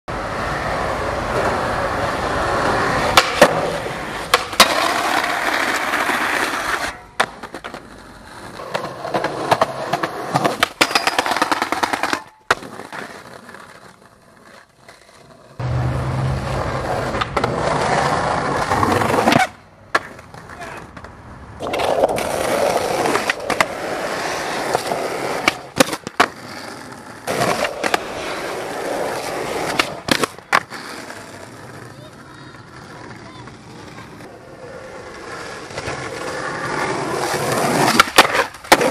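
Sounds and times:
skateboard wheels rolling on concrete: 0.1 - 38.9
skateboard pops and clacks: 3.0 - 15.2, 17.0 - 32.0, 35.1 - 38.9.

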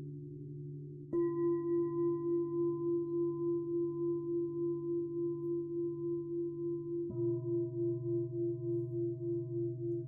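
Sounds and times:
low hum of larger bell: 0.2 - 10.0.

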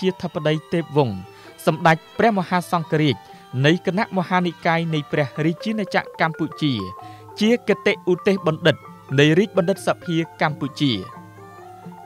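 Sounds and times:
person speaking: 0.0 - 11.2
background music: 0.0 - 12.0
sustained bell-like tones: 0.0 - 12.0.

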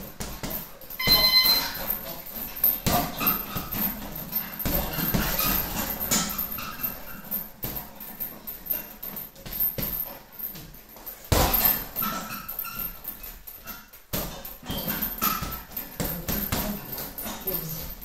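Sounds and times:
gloves punching a bag: 0.0 - 18.0
short electronic beep: 1.0 - 1.8.

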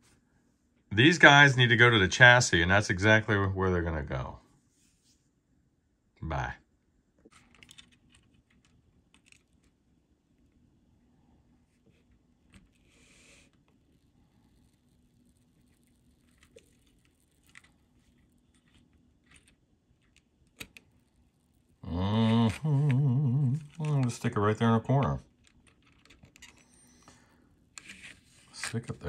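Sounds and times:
soft soldering hiss: 11.0 - 18.8.

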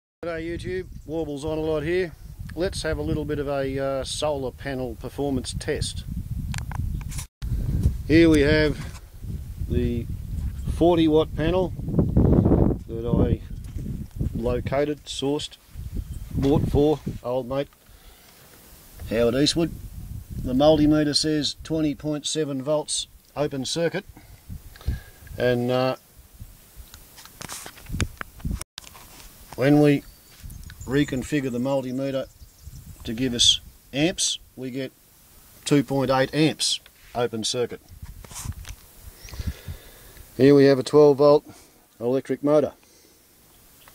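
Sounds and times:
brief rustle: 6.6 - 8.0, 26.9 - 29.6, 37.9 - 38.9
camera handling clicks and rustles: 27.2 - 29.3.

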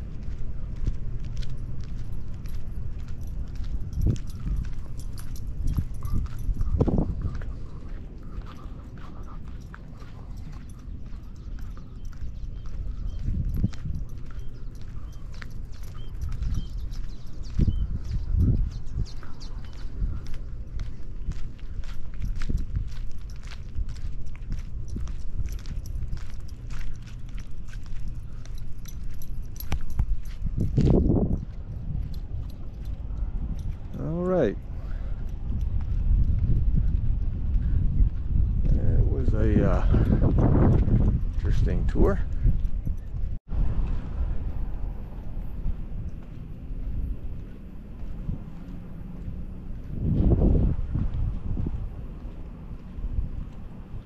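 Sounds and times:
footsteps on asphalt: 0.0 - 54.0
low rumbles: 0.0 - 54.0
wind buffeting microphone: 0.0 - 54.0.

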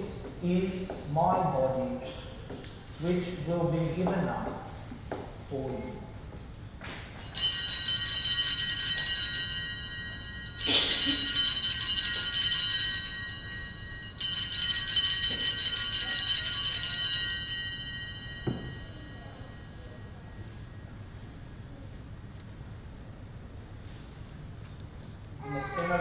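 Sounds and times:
small hand bells ringing: 7.2 - 20.1.

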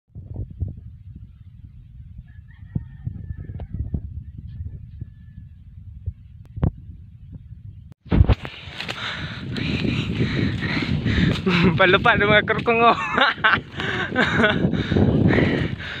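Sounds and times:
wind buffeting microphone: 0.1 - 16.0.

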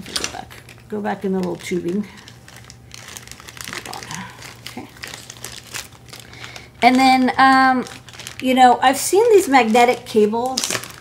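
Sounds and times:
person speaking: 0.0 - 2.3, 3.7 - 5.0, 6.8 - 10.6
plastic packaging crinkling: 0.0 - 11.0.

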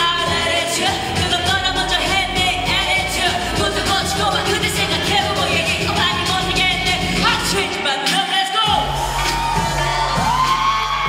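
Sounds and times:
woman singing into a microphone: 0.0 - 9.0
loud pop backing track: 0.0 - 11.0.

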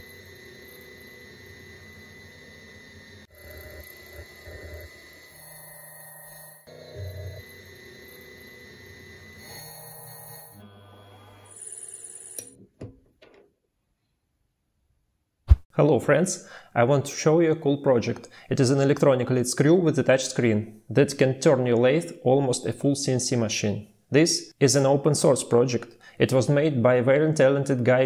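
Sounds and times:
spindle motor cutting metal: 0.0 - 12.5.

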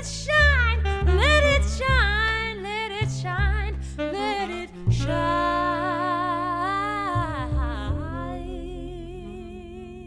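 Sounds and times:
plucked double bass: 0.0 - 10.0
saxophone: 0.0 - 10.0
woman singing: 0.0 - 10.0.

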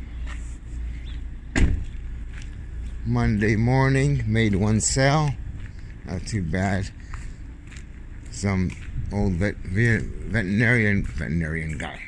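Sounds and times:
steady low rumble: 0.0 - 12.0
sharp thump: 1.5 - 1.9.

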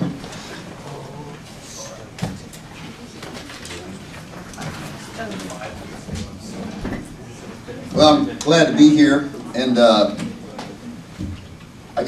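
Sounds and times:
indistinct voices and movement: 0.0 - 12.0.

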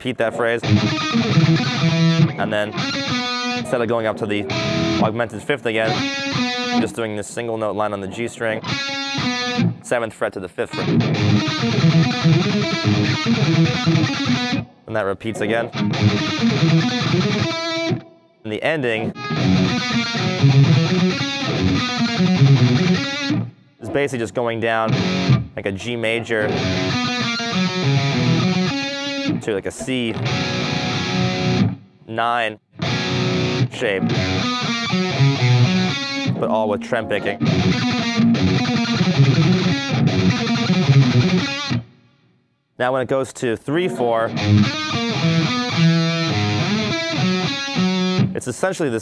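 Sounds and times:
electric guitar metal riff: 0.0 - 31.9, 32.7 - 41.9, 43.7 - 49.0.

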